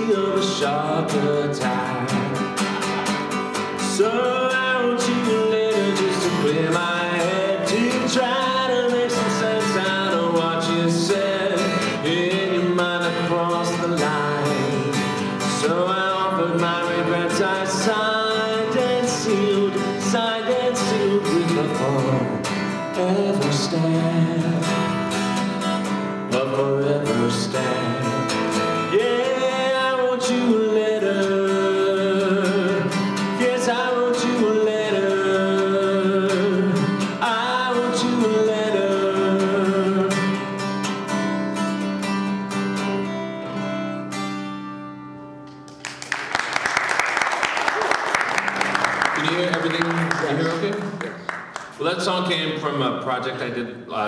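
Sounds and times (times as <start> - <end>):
man singing: 0.0 - 3.0, 3.7 - 25.2, 26.2 - 40.7
acoustic guitar: 0.0 - 54.0
audience applause: 45.7 - 51.8.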